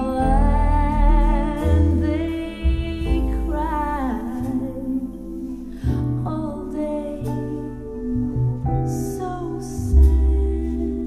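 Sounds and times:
deep bass notes: 0.0 - 11.0
person singing with vibrato: 0.0 - 11.0.

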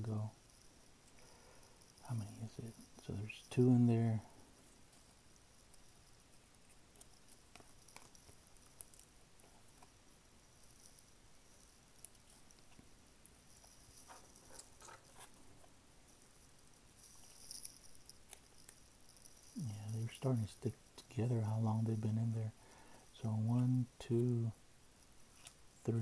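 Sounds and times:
trading cards rustling and clicking: 6.7 - 8.9, 13.6 - 15.8.

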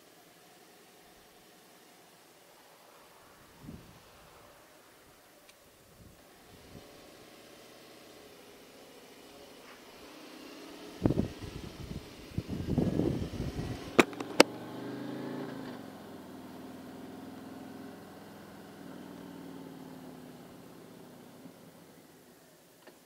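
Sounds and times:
motorcycle engine pulling away: 0.0 - 23.0
sharp clicks: 14.0 - 14.5.

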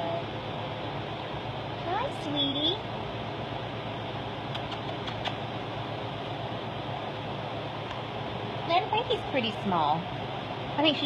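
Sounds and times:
fan whirring with low hum: 0.0 - 11.0.

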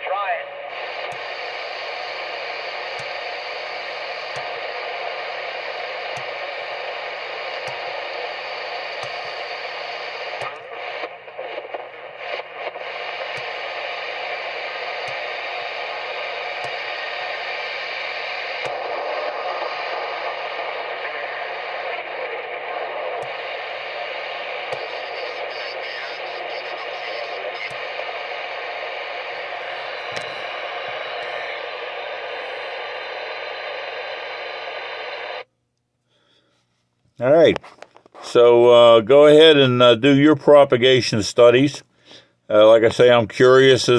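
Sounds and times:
radio static hiss: 0.0 - 35.5, 37.2 - 43.9.

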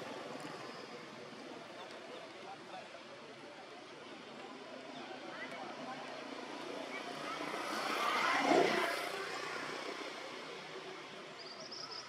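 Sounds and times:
passing engine: 6.4 - 11.1.

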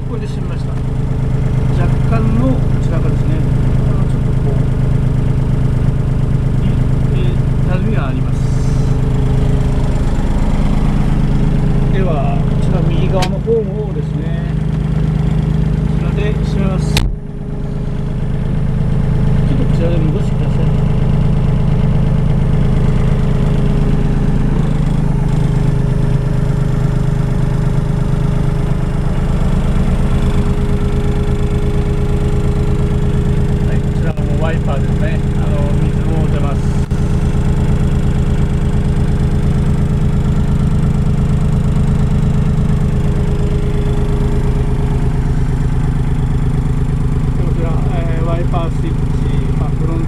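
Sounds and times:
diesel engine idling: 0.0 - 50.0.

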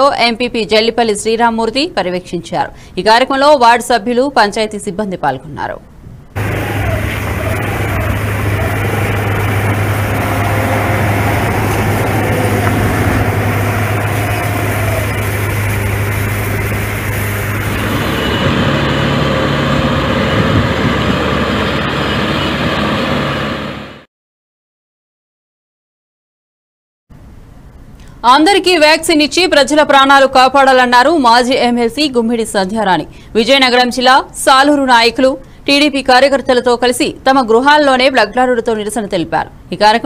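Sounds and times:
tractor engine running: 6.4 - 24.0.

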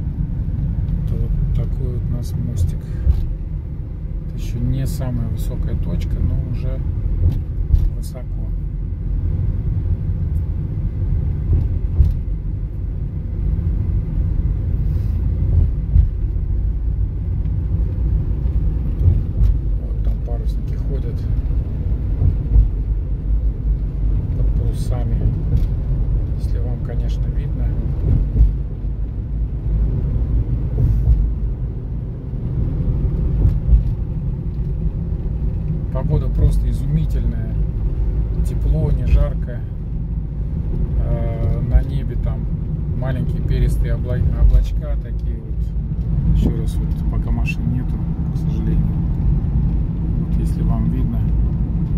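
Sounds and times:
car road and engine rumble: 0.0 - 51.9.

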